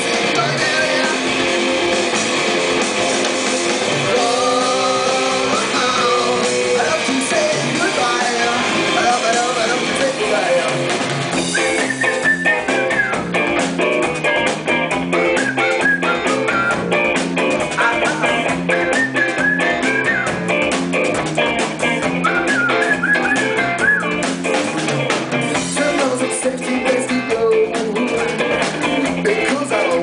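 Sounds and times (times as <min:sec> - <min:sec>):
lead guitar melody with bent notes: 0:00.0 - 0:30.0
live rock band playing: 0:00.0 - 0:30.0
steady drum beat: 0:00.0 - 0:30.0.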